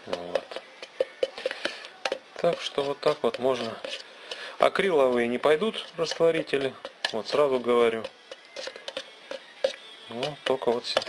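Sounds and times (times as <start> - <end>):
brush tapping against can: 0.0 - 11.0
brush scraping in metal can: 2.4 - 11.0.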